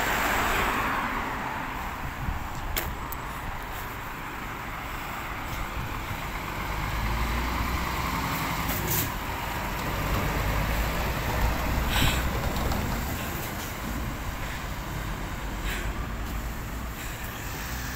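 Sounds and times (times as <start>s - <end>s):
truck diesel engine passing: 0.0s - 2.3s, 4.0s - 17.9s.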